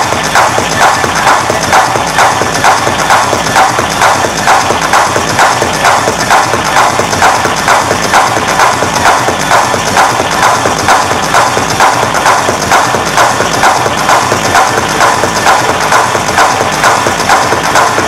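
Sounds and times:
techno music over sound system: 0.0s - 18.0s.

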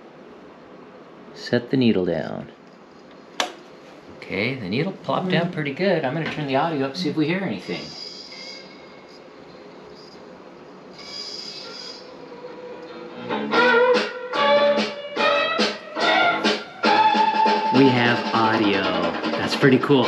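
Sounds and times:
vinyl record hiss: 0.0s - 13.7s, 14.3s - 20.0s
music from a record: 11.1s - 20.0s.

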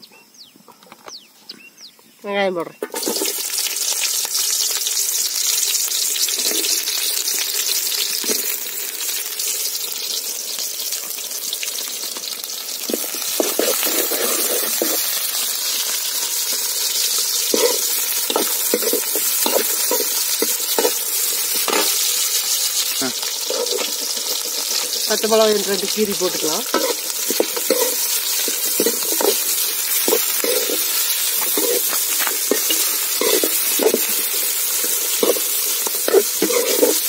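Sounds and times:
onions sizzling in oil: 2.8s - 37.0s
ladle scraping metal pot: 12.9s - 15.1s, 17.5s - 22.3s, 23.2s - 25.0s, 26.7s - 34.2s, 35.1s - 37.0s.

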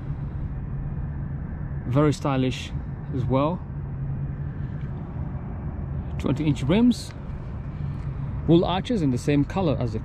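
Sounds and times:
outdoor rumble: 0.0s - 10.0s
steady low hum: 0.0s - 10.0s.

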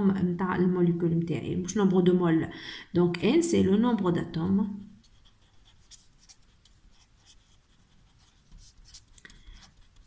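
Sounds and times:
marker scratching on paper: 4.2s - 10.0s.

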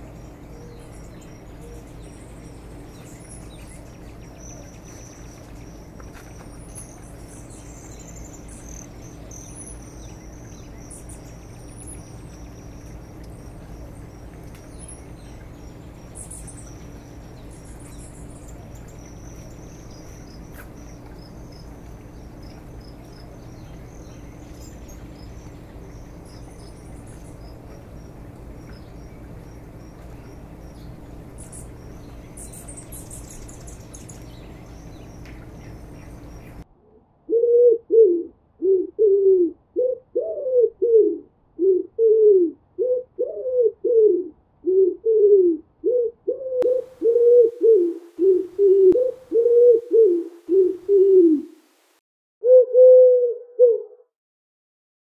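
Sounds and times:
steady low hum: 0.0s - 52.0s
pigeon cooing: 37.3s - 51.6s, 52.4s - 54.1s.

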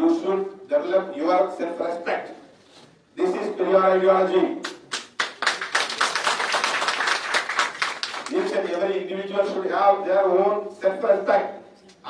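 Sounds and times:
audience applauding: 4.9s - 8.8s.

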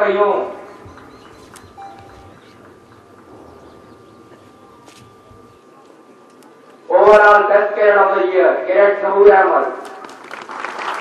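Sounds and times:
low crowd rumble: 0.4s - 7.2s
thin high tone: 0.7s - 7.0s.

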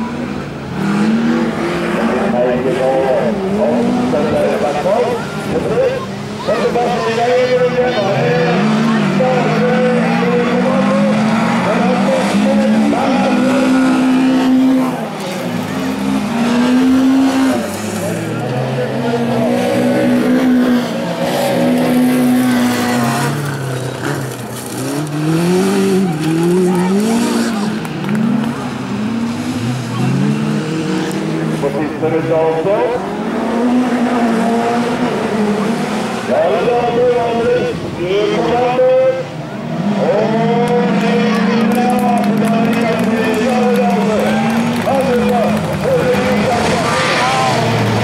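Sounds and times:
race car engines revving: 0.0s - 48.0s
tyres skidding on gravel: 2.2s - 28.7s, 40.0s - 48.0s.

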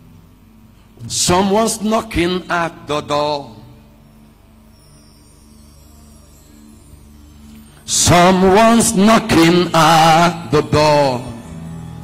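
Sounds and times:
hymn singing: 1.0s - 4.4s, 5.6s - 12.0s.

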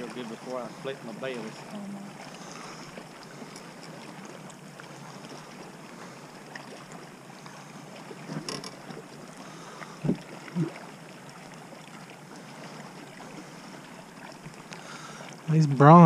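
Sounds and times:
water lapping around boat: 0.0s - 16.0s
wind: 0.0s - 16.0s.

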